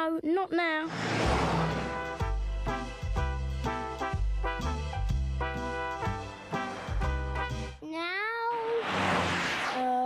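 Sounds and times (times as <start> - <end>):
car engine sound effect: 0.9 - 2.2, 8.6 - 10.0.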